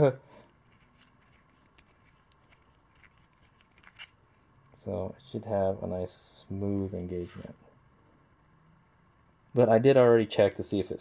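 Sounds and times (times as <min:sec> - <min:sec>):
metallic clicks and scraping: 0:00.4 - 0:04.5.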